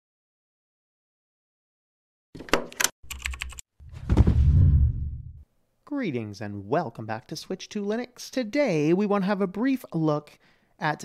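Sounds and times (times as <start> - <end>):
deep loud low hit: 4.0 - 5.4.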